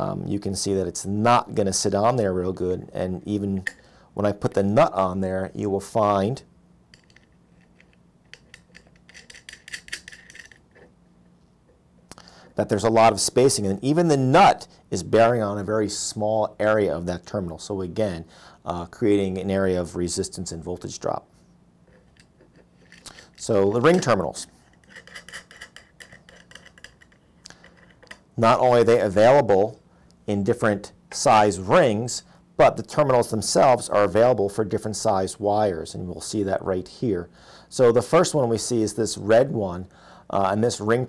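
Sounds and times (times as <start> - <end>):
small metal terminals clicking: 6.9 - 10.9
metal nut spun onto stud: 6.9 - 11.0, 21.9 - 28.3.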